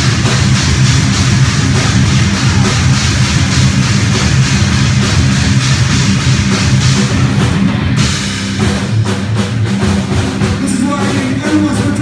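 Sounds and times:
distorted electric guitars: 0.0 - 12.0
drum beat: 0.0 - 12.0.

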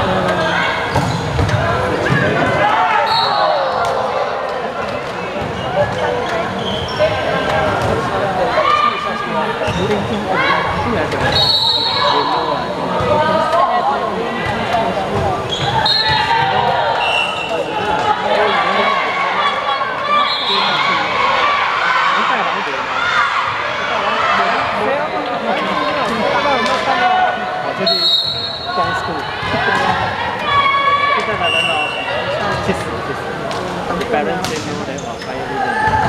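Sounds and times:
players and spectators shouting: 1.6 - 33.4, 35.4 - 36.0.

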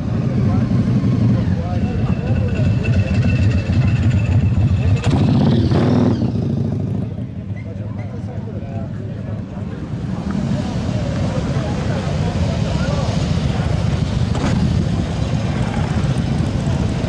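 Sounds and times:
crowd chatter: 0.0 - 17.0
motorcycle engines rumbling past: 0.0 - 17.0.

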